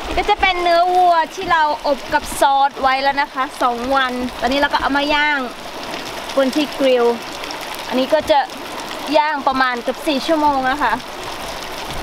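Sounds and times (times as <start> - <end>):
person talking: 0.2 - 5.5, 6.4 - 7.2, 7.9 - 8.5, 9.1 - 11.0.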